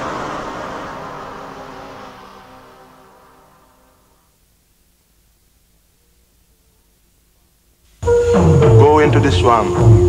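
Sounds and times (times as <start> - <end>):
synthesized white-noise swell: 0.0 - 10.0
held synth tones: 8.0 - 10.0.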